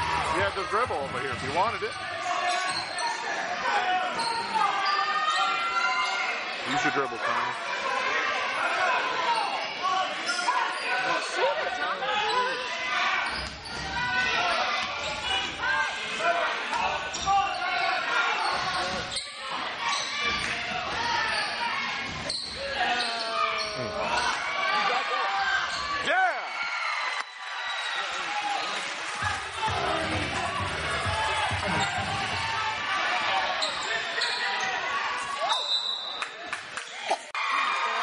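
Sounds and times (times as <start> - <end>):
voices echoing in hall: 0.0 - 27.0, 27.6 - 38.0
sneakers squeaking: 0.3 - 3.4, 4.1 - 5.7, 12.2 - 15.6, 17.0 - 24.4, 25.6 - 26.1, 28.6 - 32.7, 33.4 - 36.3.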